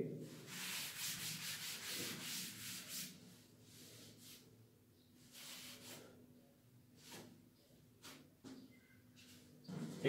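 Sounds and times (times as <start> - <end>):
erasing chalk from chalkboard: 0.4 - 3.2, 5.3 - 6.1.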